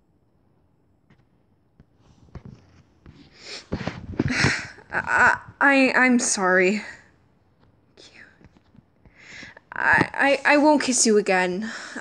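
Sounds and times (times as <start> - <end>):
faint whisper: 7.9 - 10.5.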